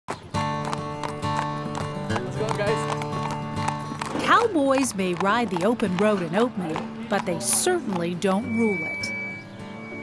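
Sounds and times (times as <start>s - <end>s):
horse hooves clip-clopping on pavement: 0.1s - 10.0s.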